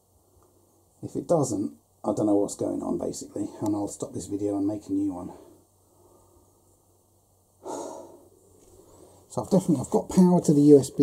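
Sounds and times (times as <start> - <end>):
man breathing: 5.3 - 6.8, 7.6 - 9.3.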